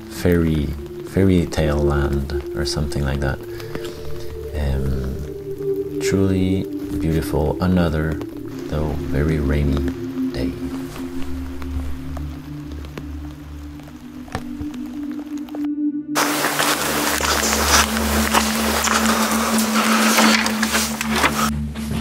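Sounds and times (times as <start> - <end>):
ambient music with low drone: 0.0 - 22.0.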